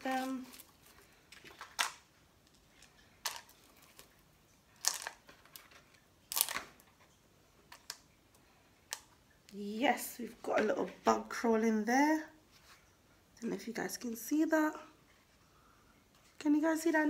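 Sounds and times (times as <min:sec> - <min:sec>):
rustling of moss and dirt: 0:00.0 - 0:01.9
stones clicking into plastic cup: 0:01.4 - 0:04.1, 0:04.8 - 0:06.7.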